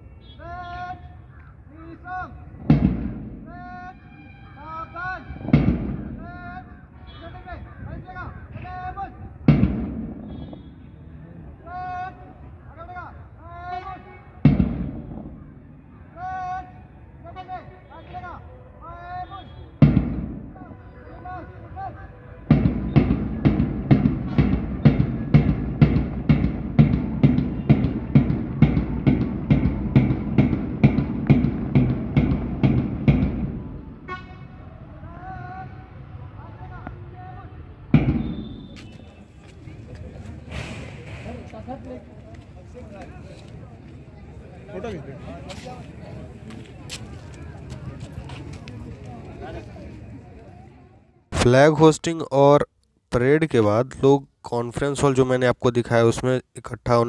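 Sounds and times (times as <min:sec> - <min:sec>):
marching footsteps: 0:05.4 - 0:06.4, 0:22.4 - 0:34.4, 0:37.9 - 0:50.6
boots stamping in unison: 0:22.5 - 0:33.6.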